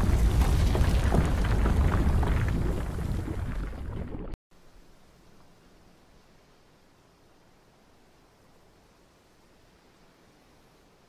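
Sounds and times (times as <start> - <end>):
deep rumble with crackling: 0.0 - 4.4
faint hiss: 4.5 - 11.0.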